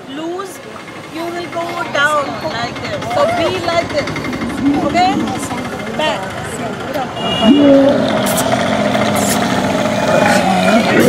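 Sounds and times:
camel bellowing: 0:07.4 - 0:11.0.

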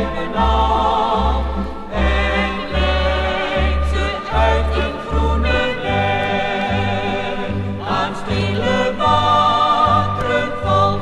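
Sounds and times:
choir singing with accompaniment: 0:00.0 - 0:11.0.

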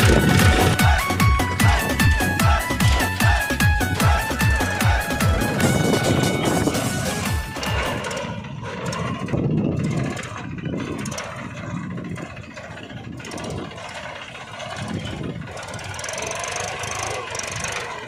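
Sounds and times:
small tractor engine running: 0:00.0 - 0:18.0.

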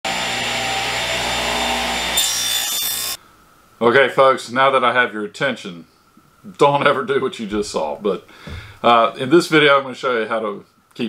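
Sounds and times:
table saw cutting wood: 0:00.0 - 0:03.2.

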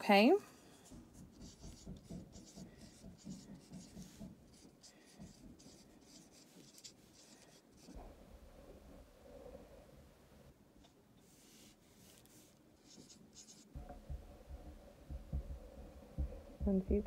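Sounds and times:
marker squeaking on whiteboard: 0:00.8 - 0:08.0, 0:12.8 - 0:14.8.

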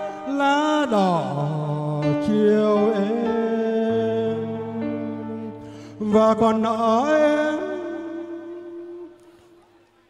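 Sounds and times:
man singing long note: 0:00.0 - 0:09.8.

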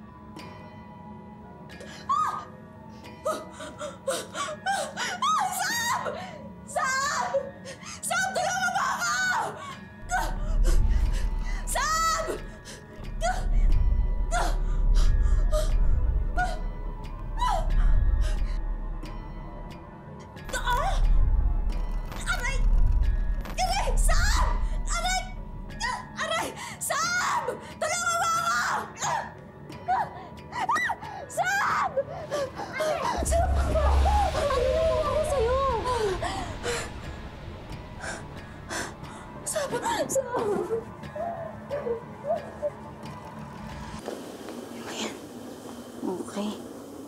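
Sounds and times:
background music: 0:00.0 - 0:47.0
woman whimpering and wailing: 0:39.5 - 0:42.9.

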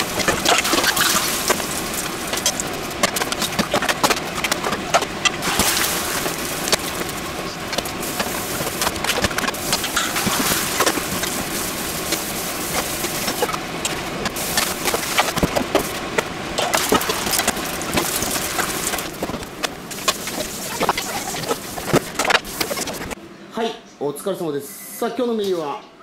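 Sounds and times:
noodles sizzling in a frying pan: 0:00.0 - 0:03.7, 0:05.4 - 0:23.2.

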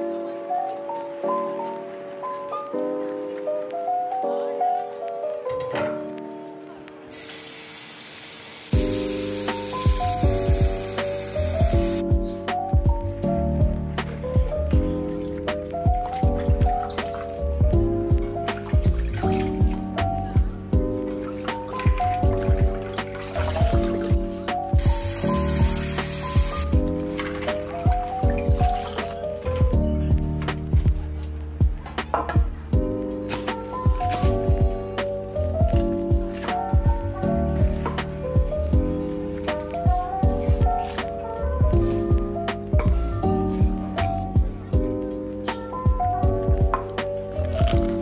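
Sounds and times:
tap water spraying into bowl: 0:07.1 - 0:12.0, 0:24.8 - 0:28.0
background music with steady beat: 0:08.7 - 0:48.0
water splashing and pouring: 0:15.0 - 0:17.5, 0:18.2 - 0:20.2, 0:20.9 - 0:29.6.

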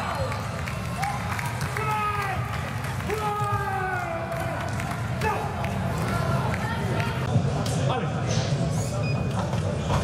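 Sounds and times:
crowd noise in large hall: 0:00.0 - 0:10.0.

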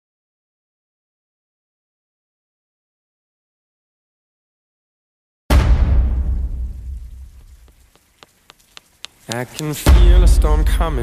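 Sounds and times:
thunder crack and rumble: 0:05.5 - 0:07.9, 0:09.8 - 0:11.0.

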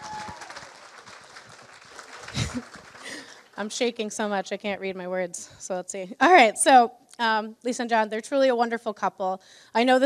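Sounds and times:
crowd applauding: 0:00.0 - 0:04.0.

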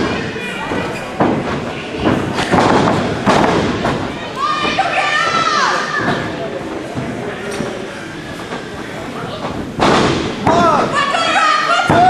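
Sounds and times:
crowd shouting: 0:10.5 - 0:12.0.

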